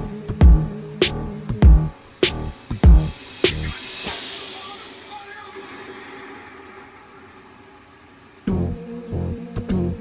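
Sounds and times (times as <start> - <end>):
faint hiss: 1.9 - 9.0.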